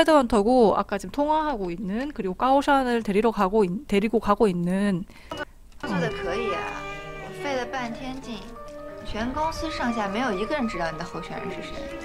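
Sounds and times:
background music steady chord: 5.8s - 12.0s
person speaking: 5.8s - 12.0s.

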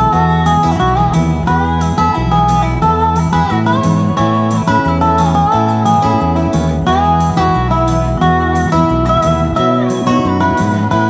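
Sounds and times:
lap slide guitar solo: 0.0s - 11.0s
sustained low bass notes: 0.0s - 11.0s.

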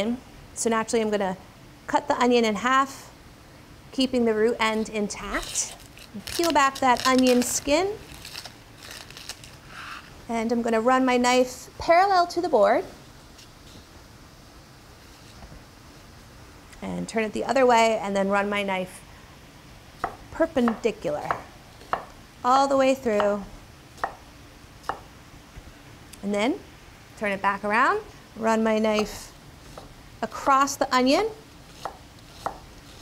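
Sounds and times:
onion skin crackling: 5.1s - 10.1s, 31.5s - 33.0s.

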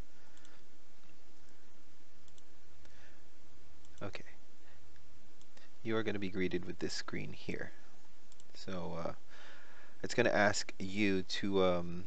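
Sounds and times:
steady low hum: 0.0s - 12.0s
computer mouse clicks: 0.3s - 3.0s, 8.3s - 8.6s.

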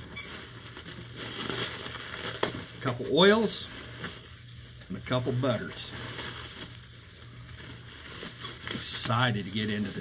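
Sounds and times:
bubble wrap crinkling: 0.0s - 10.0s
low steady hum: 0.0s - 10.0s.

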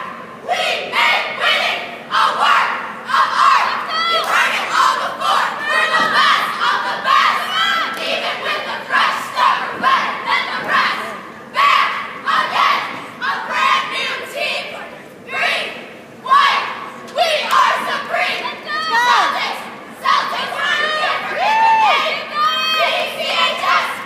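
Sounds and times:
girls shouting a cheer in unison: 0.0s - 24.0s.

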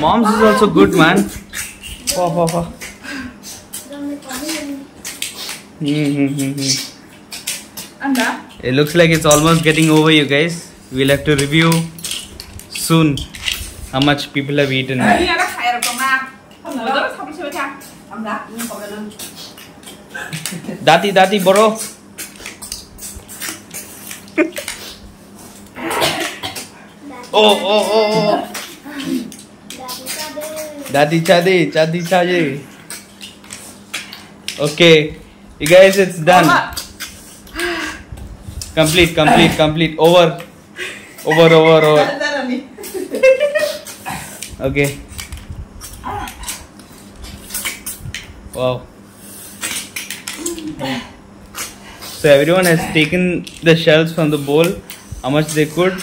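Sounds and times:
people slurping snails: 5.0s - 7.6s, 21.8s - 26.7s.

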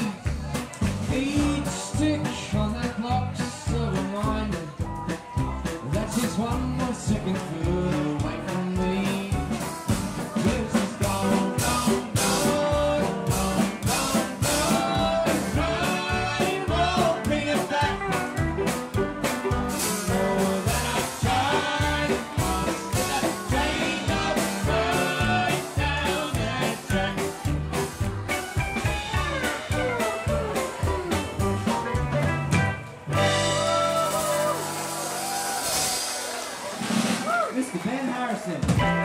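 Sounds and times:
western swing band playing: 0.0s - 39.0s.

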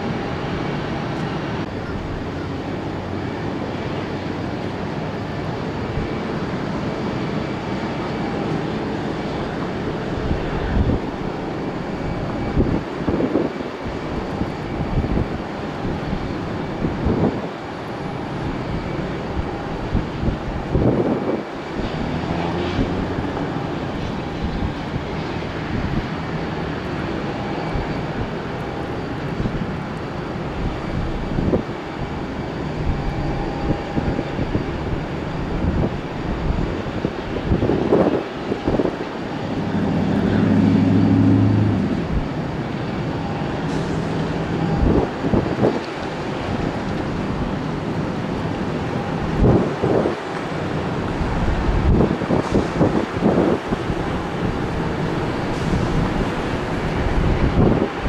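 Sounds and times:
jet engines rumbling: 0.0s - 58.0s.

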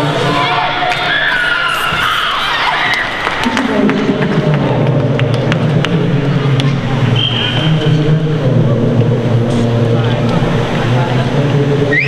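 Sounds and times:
indistinct echoing voices: 0.0s - 12.0s.

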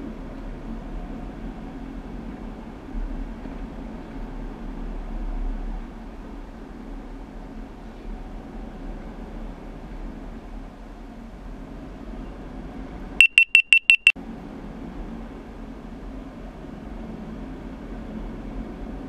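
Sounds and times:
rapid high-pitched electronic beeps: 13.2s - 14.2s.

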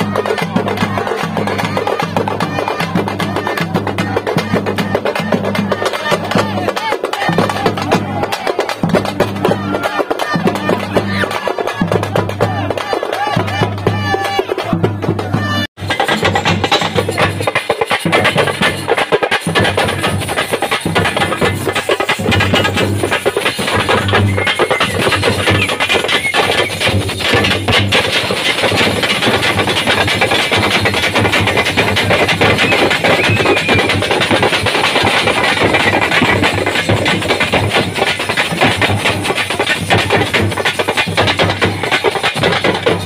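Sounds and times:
frame drums beaten with sticks: 0.0s - 43.0s.

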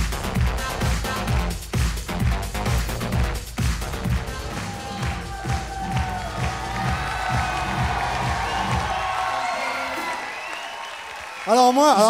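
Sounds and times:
fast electronic dance music: 0.0s - 10.1s
audience applauding and cheering: 0.0s - 12.0s.

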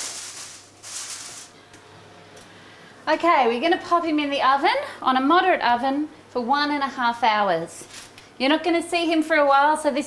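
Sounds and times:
aluminium foil crinkling: 0.0s - 1.6s.

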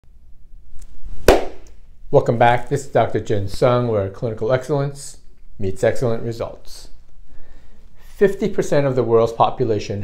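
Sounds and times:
sharp hand clap: 1.2s - 1.8s.

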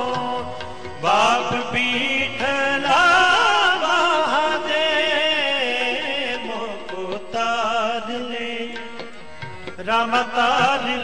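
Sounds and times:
harmonium: 0.0s - 11.0s
person singing devotional hymn: 0.0s - 11.0s.

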